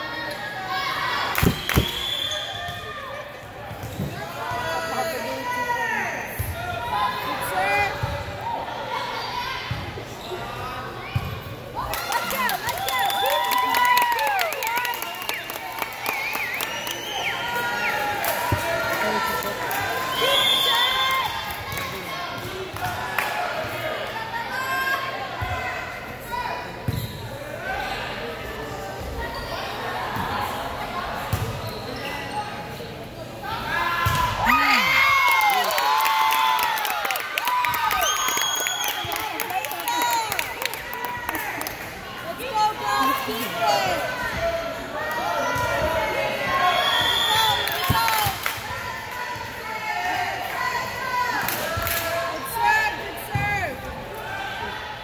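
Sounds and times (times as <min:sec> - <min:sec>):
sneaker squeaks on gym floor: 0:31.3 - 0:33.0.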